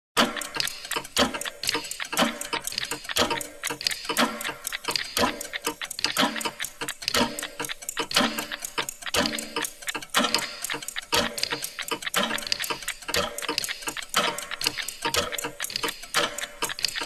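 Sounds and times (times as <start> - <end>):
clock-like ticking: 0.2 - 17.0.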